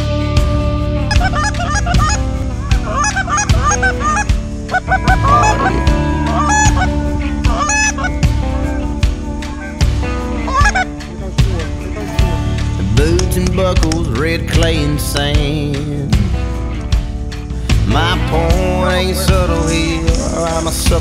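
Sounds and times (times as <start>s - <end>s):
music with steady drum beat: 0.0s - 21.0s
goose honks and clucks: 1.1s - 6.9s, 10.5s - 10.9s.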